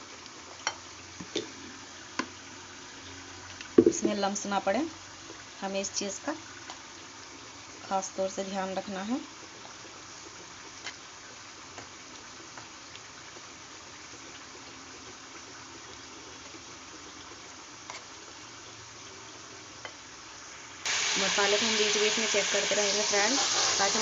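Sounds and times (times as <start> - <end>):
faint steady hiss: 0.0 - 24.0
spices sizzling in a pan: 0.0 - 24.0.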